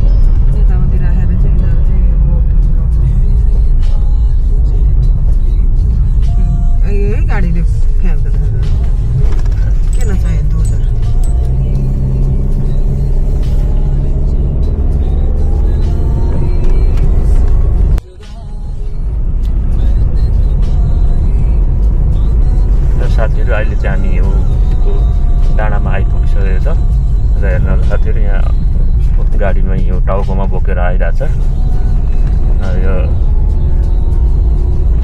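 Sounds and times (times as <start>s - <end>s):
car engine and road noise: 0.0s - 35.0s.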